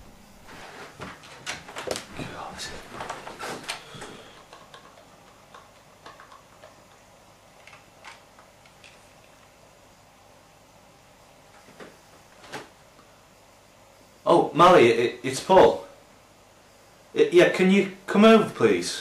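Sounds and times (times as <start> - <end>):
low room hiss: 0.0 - 19.0.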